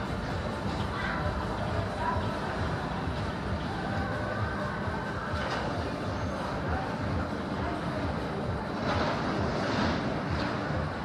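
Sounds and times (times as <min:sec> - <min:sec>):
funfair background noise: 0:00.0 - 0:11.0.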